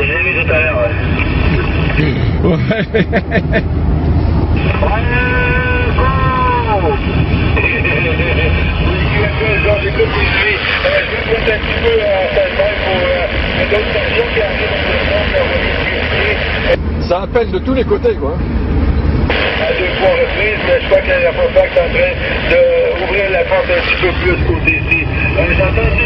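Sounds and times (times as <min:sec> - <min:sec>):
radio static hiss: 0:00.0 - 0:02.2, 0:04.6 - 0:05.2, 0:06.7 - 0:16.8, 0:19.3 - 0:26.0
low car hum: 0:00.0 - 0:26.0
garbled warbling radio voices: 0:04.6 - 0:16.8, 0:19.3 - 0:26.0.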